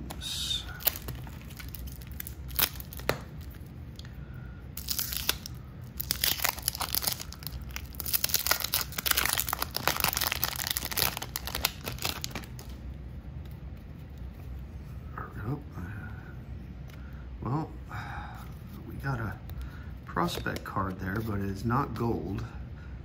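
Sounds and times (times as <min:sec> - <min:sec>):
wax paper wrapper tearing: 0:00.7 - 0:03.7, 0:04.8 - 0:12.8.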